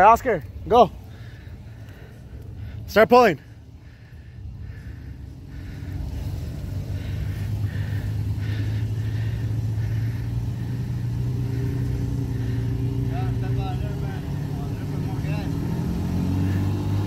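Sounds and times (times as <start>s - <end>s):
truck engine drone under load: 0.0s - 17.0s.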